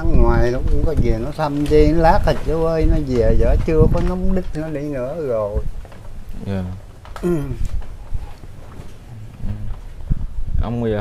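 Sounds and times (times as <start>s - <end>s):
man's voice murmuring: 6.4s - 7.7s, 9.1s - 9.8s.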